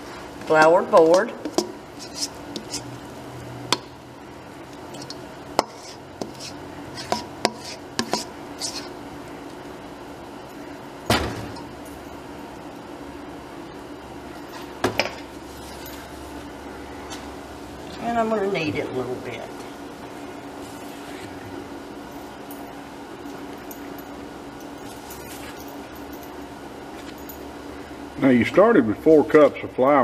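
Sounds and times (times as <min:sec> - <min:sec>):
metal spoon scraping steel bowl: 0:02.0 - 0:02.9, 0:04.9 - 0:08.9.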